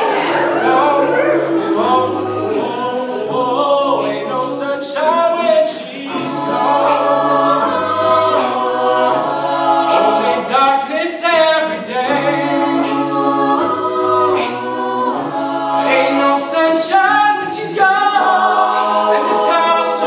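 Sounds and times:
sung bass line: 0.0 - 4.5
a cappella group singing harmony: 0.0 - 20.0.

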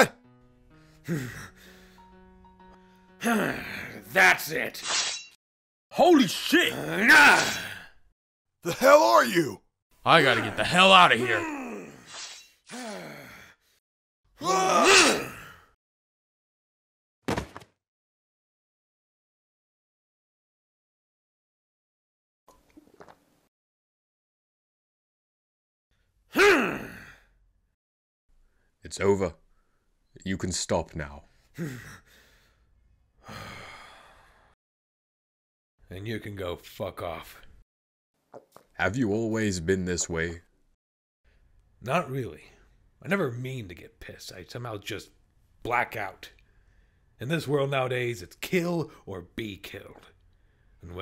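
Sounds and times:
soft background music: 0.0 - 4.7
man breathing sharply: 0.8 - 2.1, 31.6 - 34.6
person gasping: 0.9 - 2.0, 12.7 - 13.8, 26.4 - 27.3, 31.6 - 32.6, 33.2 - 34.6
man groaning: 3.2 - 4.0, 6.6 - 7.9, 10.3 - 12.1, 12.7 - 13.5, 14.4 - 15.6, 26.4 - 27.2
man's wordless cry: 3.2 - 4.1, 6.6 - 7.9, 10.2 - 12.1, 14.4 - 15.5, 26.4 - 27.2
man yelling: 6.0 - 7.6, 8.7 - 11.8, 14.4 - 15.2.

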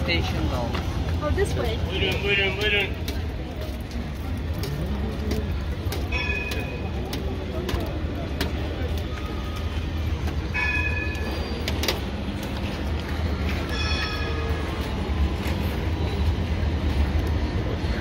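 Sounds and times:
passers-by talking: 0.0 - 18.0
traffic rumble: 0.0 - 18.0.

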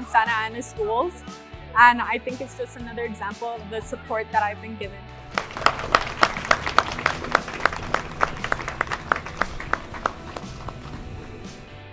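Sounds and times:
quiet background music: 0.0 - 11.9
small group clapping: 5.3 - 11.5.

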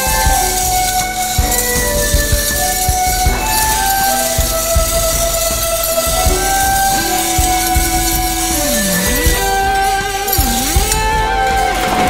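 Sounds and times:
held melody notes: 0.0 - 12.0
low drum beat: 0.0 - 12.0.

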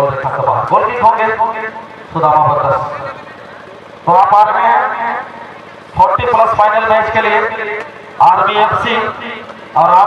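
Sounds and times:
man calling out commentary: 4.0 - 5.3, 6.0 - 10.0.

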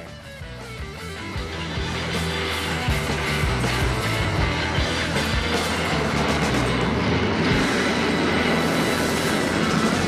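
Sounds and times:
background music: 0.0 - 10.0
jet engine roaring: 0.8 - 10.0.

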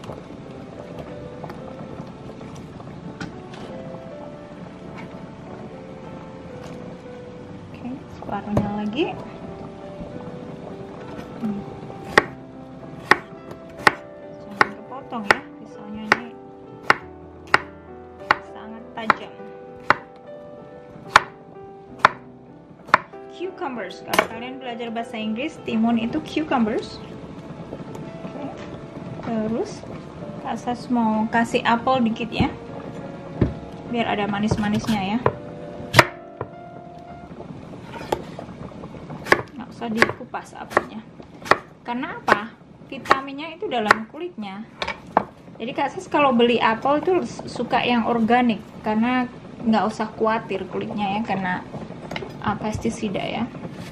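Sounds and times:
knife striking wooden board: 21.1 - 21.3, 35.9 - 36.2.

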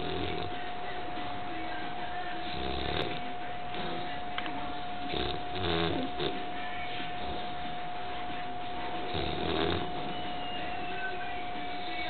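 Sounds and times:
puppy snoring: 0.0 - 0.7, 2.4 - 4.3, 5.0 - 7.8, 9.0 - 10.2.

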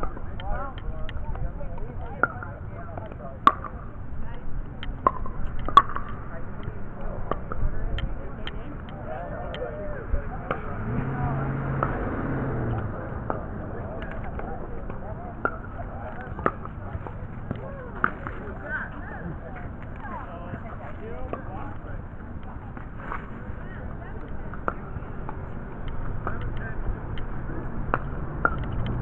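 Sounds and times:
faint voices: 0.0 - 29.0.

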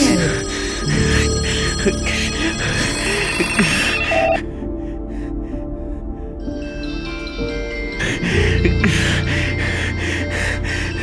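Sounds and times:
telephone ringing: 0.0 - 4.4
film score music: 0.0 - 11.0.

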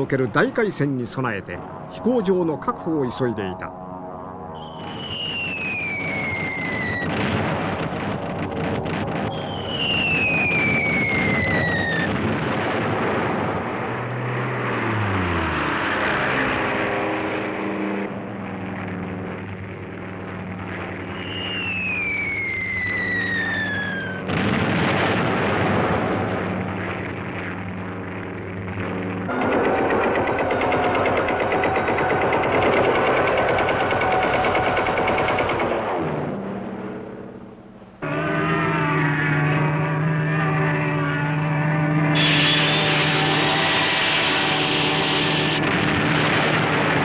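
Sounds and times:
droning aircraft engine: 0.0 - 47.0
plane passing: 0.0 - 47.0
falling bomb whistles: 4.6 - 7.4, 9.1 - 12.2, 21.0 - 24.3, 42.0 - 45.6
explosions: 4.7 - 16.1, 20.2 - 27.8, 42.2 - 47.0.

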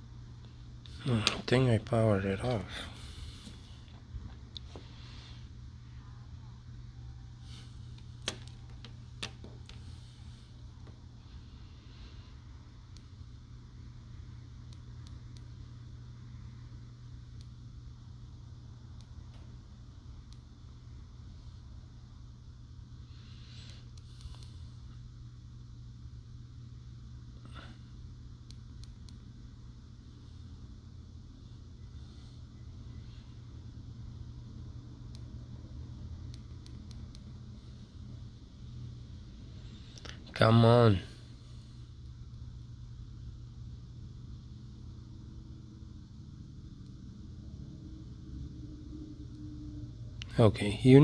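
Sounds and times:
low room hum: 0.0 - 51.0.

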